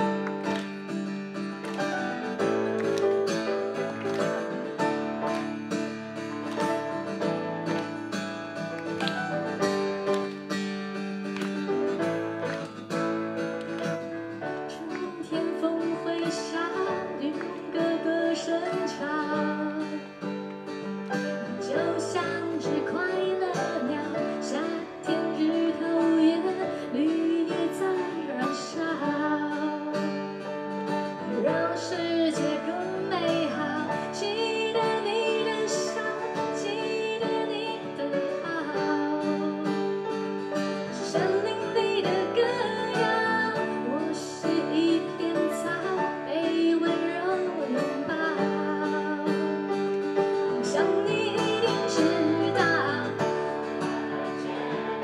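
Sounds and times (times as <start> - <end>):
acoustic guitar: 0.0 - 55.0
woman singing pop song: 14.4 - 20.3, 21.4 - 30.2, 31.0 - 40.0, 40.8 - 55.0.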